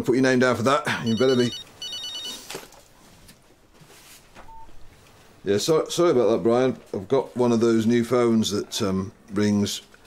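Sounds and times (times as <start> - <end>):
mobile phone beep: 1.0 - 2.5.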